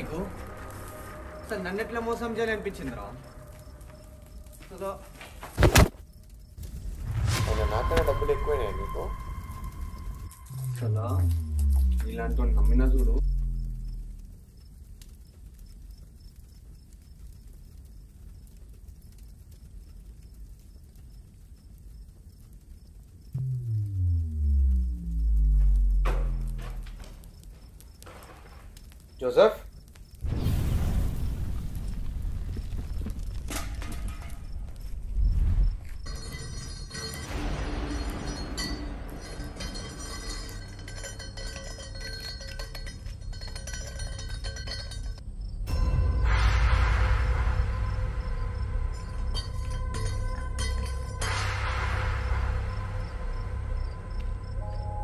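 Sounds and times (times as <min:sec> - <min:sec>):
film music with ringing tones: 0:00.0 - 0:14.8, 0:23.3 - 0:28.4, 0:33.5 - 0:55.0
low film score drone: 0:07.2 - 0:14.6, 0:23.4 - 0:27.2
cinematic bass drop: 0:08.9 - 0:14.3, 0:23.4 - 0:27.0.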